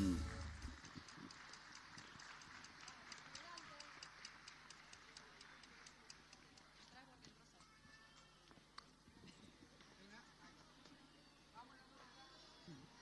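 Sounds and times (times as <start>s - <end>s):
faint audience applause: 0.0s - 8.5s.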